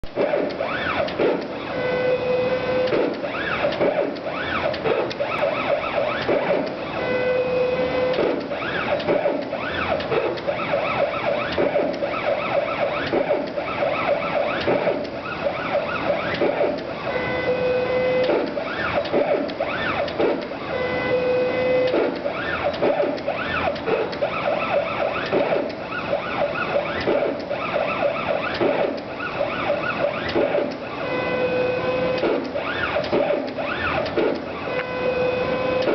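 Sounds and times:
drive motors whining: 0.1 - 35.9.

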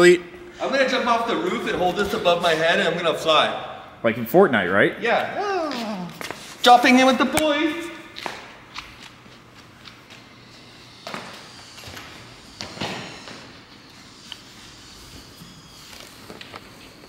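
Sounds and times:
footsteps on concrete floor: 5.6 - 6.7, 7.4 - 17.0.

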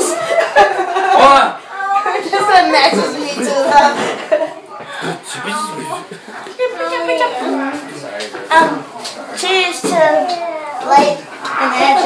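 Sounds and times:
excited high-pitched voices: 5.0 - 7.5.

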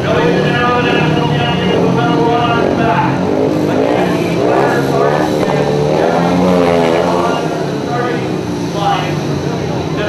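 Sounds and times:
motorcycle engines revving: 0.0 - 10.0.

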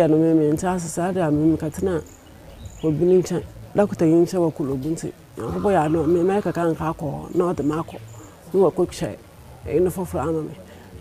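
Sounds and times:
faint cricket chirping: 0.6 - 11.0
person speaking: 2.8 - 11.0.

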